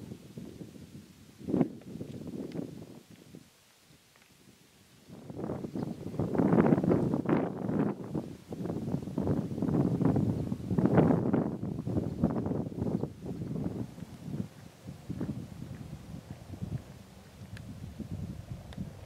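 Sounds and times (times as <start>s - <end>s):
wind buffeting microphone: 0.0s - 3.5s, 4.4s - 19.0s.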